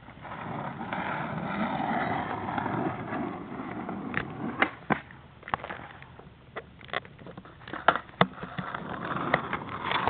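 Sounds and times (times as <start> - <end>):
skateboard wheels rolling on pavement: 0.0 - 10.0.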